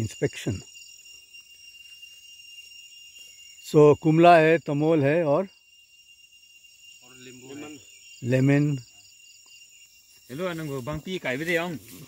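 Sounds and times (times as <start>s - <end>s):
man speaking: 7.1s - 8.8s, 10.3s - 12.0s.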